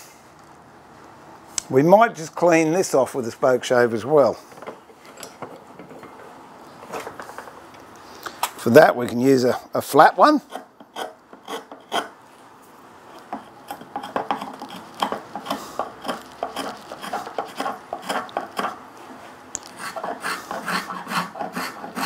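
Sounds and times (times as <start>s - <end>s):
spokeshave scraping wood: 10.4s - 12.2s, 13.2s - 22.0s.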